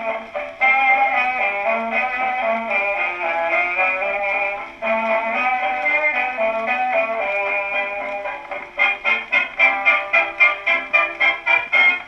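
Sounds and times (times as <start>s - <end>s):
dance-band music on a gramophone: 0.0s - 12.0s.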